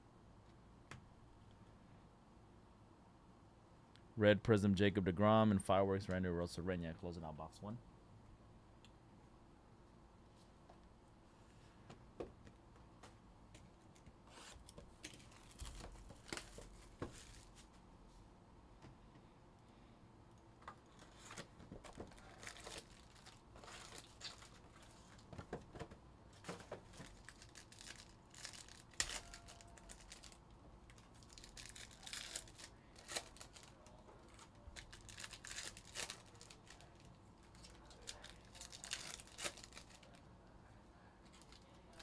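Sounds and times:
foil wrappers tearing and crinkling: 22.1 - 25.2, 26.5 - 40.2.

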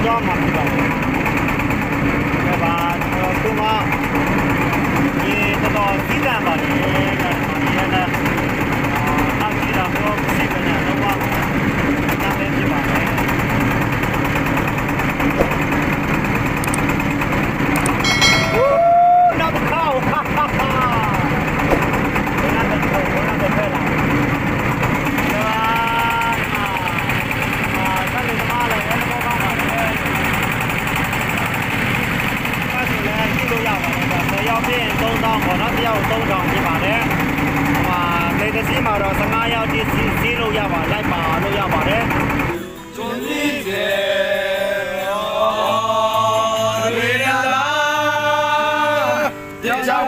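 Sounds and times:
boat engine running: 0.0 - 42.9.

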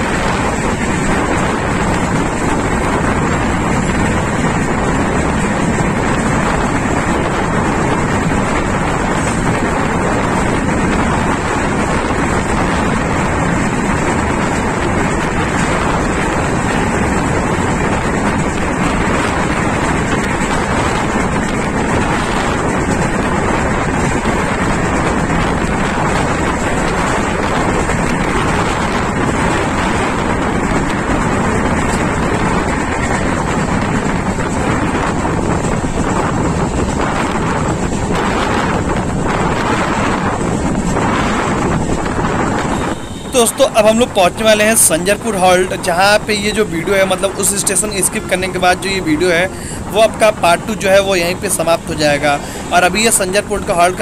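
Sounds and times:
train running on track: 0.0 - 54.0
wind buffeting microphone: 0.0 - 54.0.

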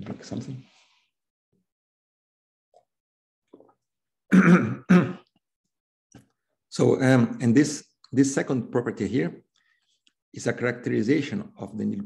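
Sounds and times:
man coughing: 4.3 - 5.2
man clearing his throat: 4.3 - 5.3.

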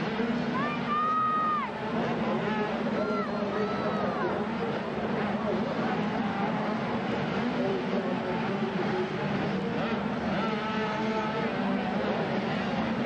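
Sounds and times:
din of voices: 0.0 - 13.0
mini motocross bikes revving: 0.0 - 13.0.

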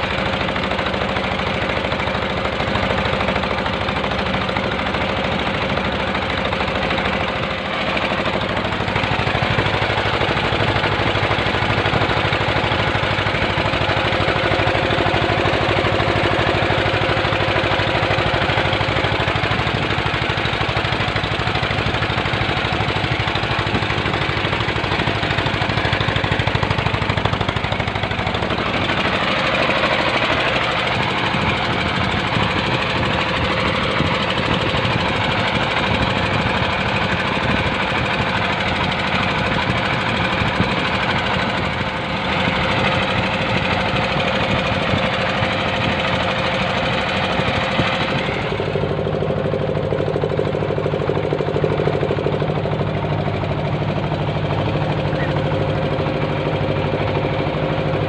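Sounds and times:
boat engine knocking: 0.0 - 58.0.

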